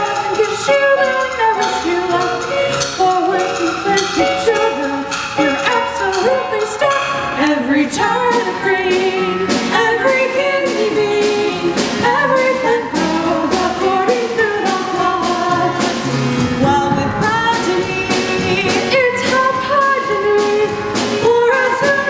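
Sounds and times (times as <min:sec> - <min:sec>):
women singing a duet: 0:00.0 - 0:22.0.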